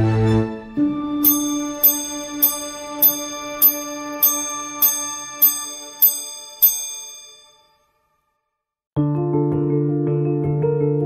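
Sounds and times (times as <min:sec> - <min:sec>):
watch gong chiming: 0:01.2 - 0:07.8.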